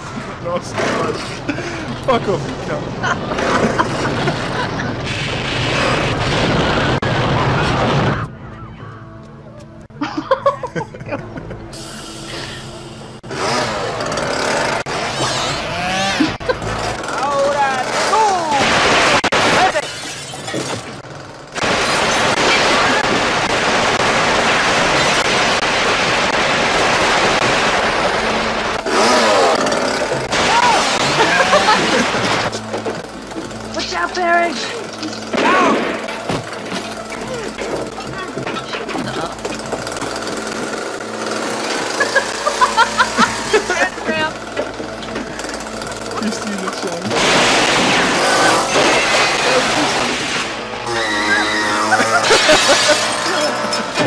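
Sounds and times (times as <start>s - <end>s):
noisy crash: 3.3s - 8.4s, 17.9s - 51.0s, 51.8s - 54.0s
chainsaw running: 11.8s - 19.8s, 20.6s - 54.0s.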